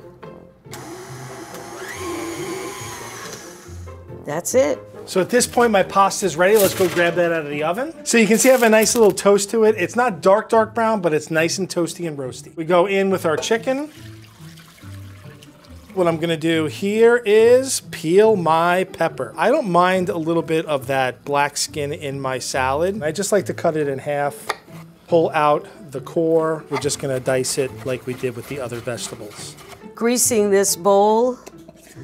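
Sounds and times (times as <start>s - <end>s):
background music: 0.0s - 32.0s
stand mixer motor whine: 0.8s - 3.8s
liquid poured through a strainer: 13.7s - 16.1s.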